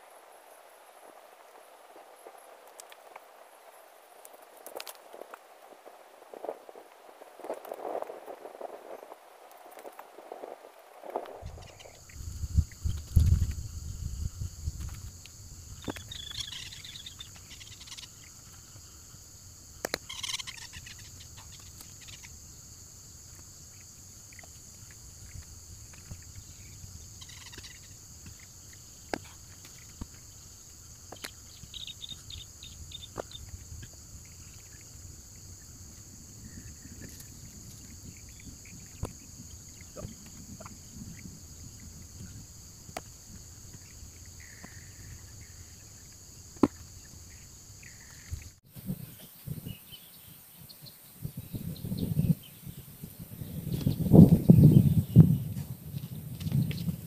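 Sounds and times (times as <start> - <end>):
insects chorus: 0.0 - 57.0
bird chirps: 15.8 - 18.6, 19.9 - 22.4, 26.0 - 29.9, 31.1 - 34.9.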